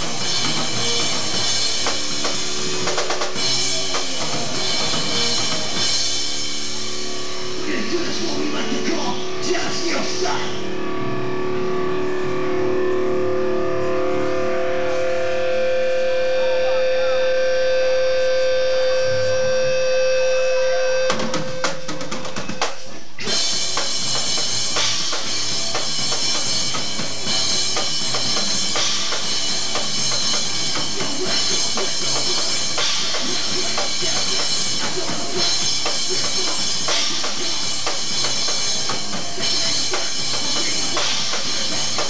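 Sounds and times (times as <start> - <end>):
drum kit: 0.0 - 12.7, 14.2 - 42.0
electric guitars: 0.0 - 42.0.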